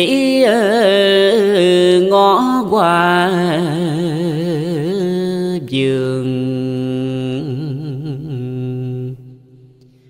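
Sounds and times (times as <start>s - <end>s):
person chanting a long wavering note: 0.0s - 9.7s.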